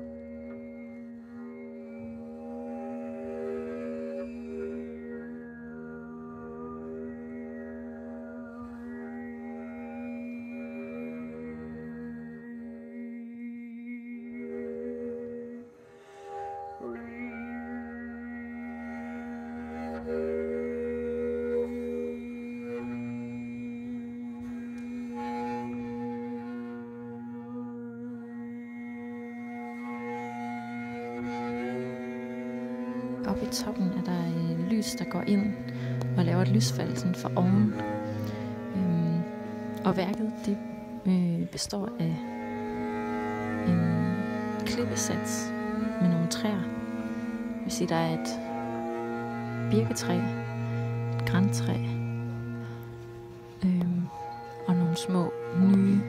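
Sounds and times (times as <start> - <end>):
bowed double bass note: 0.0 - 56.0.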